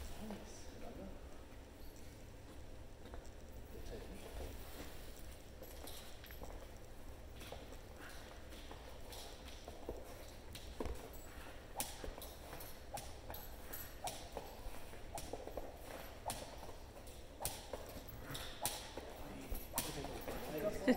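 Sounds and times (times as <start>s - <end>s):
dog paws scrabbling: 1.4s - 20.9s.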